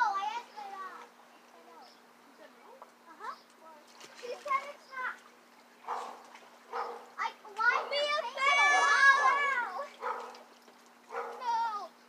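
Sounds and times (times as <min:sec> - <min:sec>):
children shouting at play: 0:07.1 - 0:10.1.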